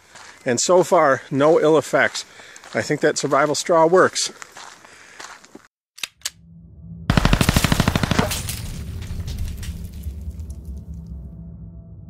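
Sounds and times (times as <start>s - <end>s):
low sustained music drone: 6.4s - 12.0s
loud rapid rattling burst: 7.1s - 8.5s.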